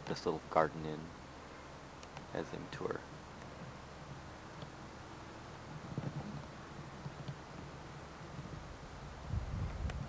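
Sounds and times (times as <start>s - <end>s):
wind buffeting microphone: 5.6s - 10.0s.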